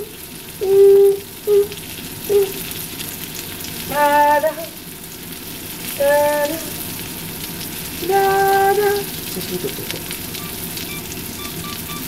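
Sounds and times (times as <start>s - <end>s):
meat sizzling in a frying pan: 0.0s - 12.0s.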